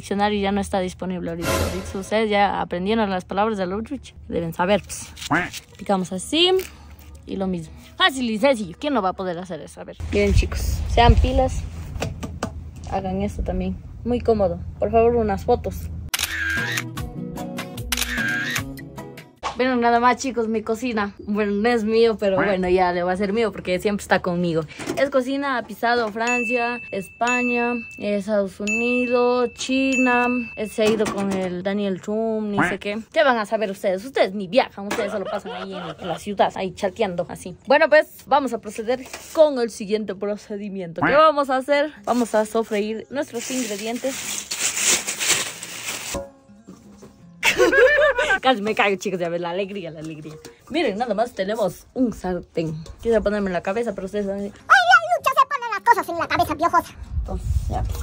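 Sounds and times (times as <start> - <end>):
background music: 1.3 - 2.6, 16.2 - 31.0, 40.8 - 57.1
camera shutter sound effect: 16.1 - 17.0, 17.8 - 18.7
rustling scuffling noise: 42.1 - 47.1.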